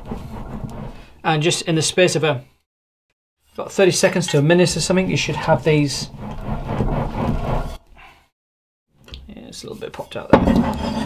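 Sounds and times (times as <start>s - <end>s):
propeller rubbing on metal bar: 0.0s - 1.2s, 4.9s - 7.8s, 10.4s - 11.0s.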